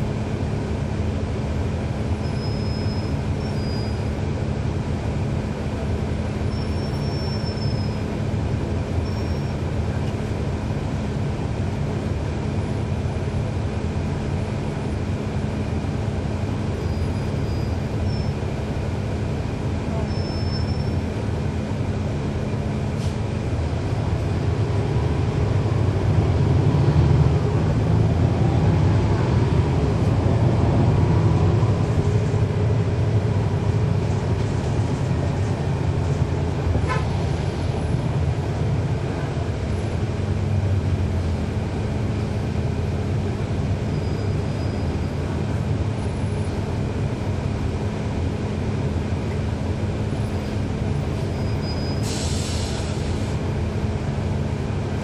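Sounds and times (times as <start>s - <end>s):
diesel bus engine running: 0.0s - 55.0s.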